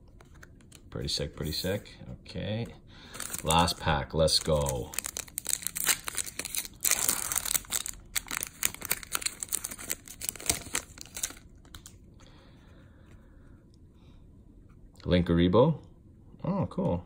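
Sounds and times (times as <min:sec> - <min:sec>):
foil wrapper tearing and crinkling: 0:03.2 - 0:03.8, 0:04.4 - 0:11.9.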